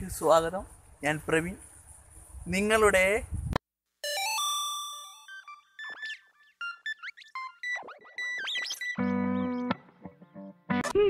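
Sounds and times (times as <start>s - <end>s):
chirping electronic blips: 5.0s - 9.9s.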